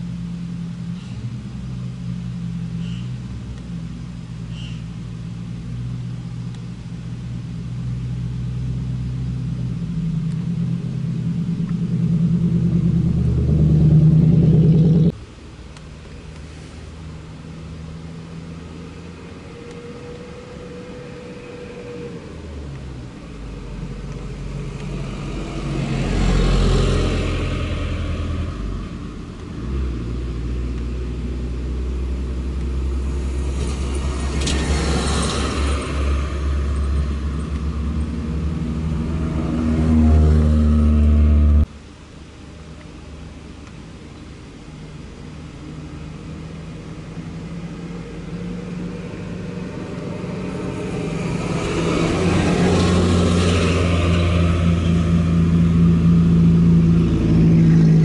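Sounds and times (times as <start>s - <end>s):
van engine running: 0.0s - 19.6s, 20.2s - 58.0s
car engine rumble: 0.0s - 58.0s
truck passing: 5.7s - 15.3s, 17.7s - 41.7s, 46.5s - 58.0s.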